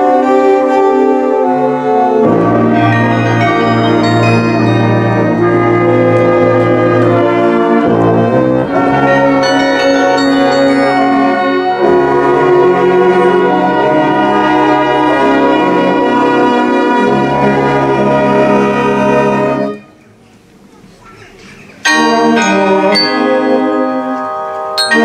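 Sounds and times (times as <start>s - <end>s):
brass long held notes: 0.0s - 19.9s, 21.9s - 25.0s
carillon bells playing: 2.7s - 7.4s, 8.8s - 12.9s, 21.8s - 25.0s.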